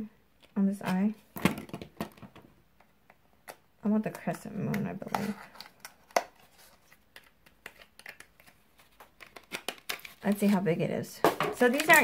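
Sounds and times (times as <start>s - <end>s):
plastic items clicking and rattling: 11.3s - 12.0s.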